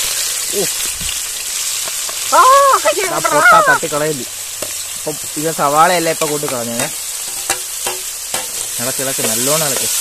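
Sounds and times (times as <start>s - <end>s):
oil sizzling in pot: 0.0s - 10.0s.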